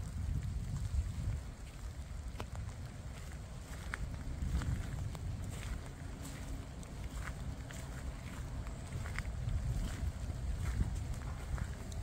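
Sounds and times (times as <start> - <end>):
faint footsteps: 0.0 - 12.0
wind rumbling on microphone: 0.0 - 12.0.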